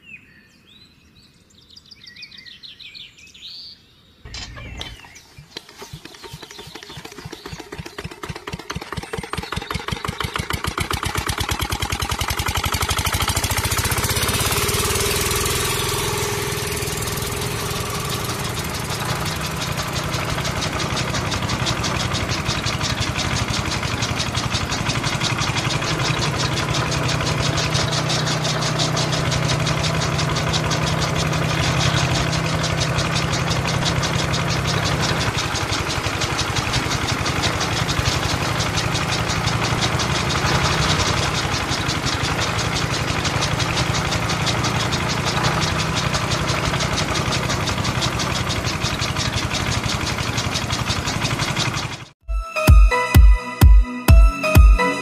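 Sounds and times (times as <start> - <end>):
model diesel engine knocking: 5.6 - 52.2.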